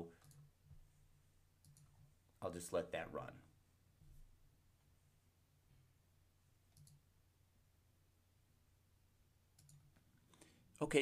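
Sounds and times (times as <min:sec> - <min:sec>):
man speaking: 0:02.4 - 0:03.5, 0:10.8 - 0:11.0
faint clicks: 0:06.7 - 0:07.0, 0:09.6 - 0:10.5.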